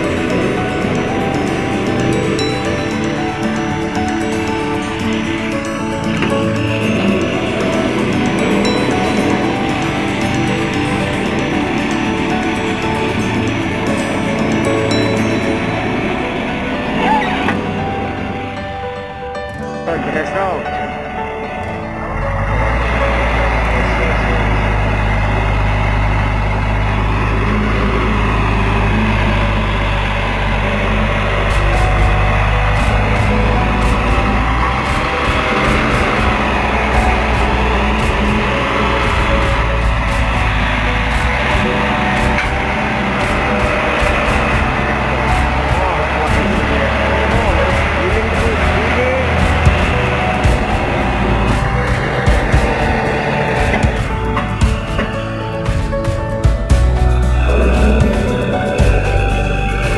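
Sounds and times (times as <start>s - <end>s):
diesel engine and hydraulics running: 0.0s - 59.9s
music: 0.0s - 59.9s
voices: 0.0s - 59.9s.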